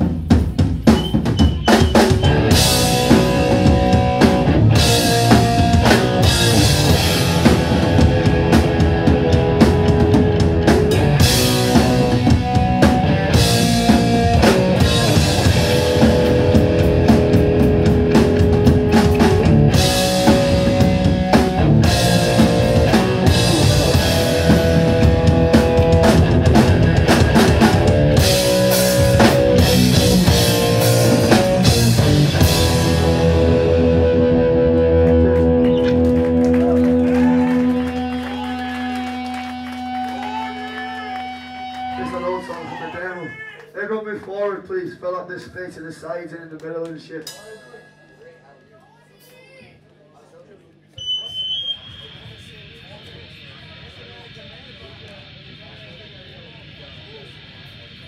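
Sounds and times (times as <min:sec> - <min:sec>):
drum kit: 0:00.0 - 0:42.1, 0:47.2 - 0:48.0
bass guitar: 0:00.0 - 0:42.8
distorted electric guitar: 0:01.2 - 0:42.8, 0:51.0 - 0:58.0.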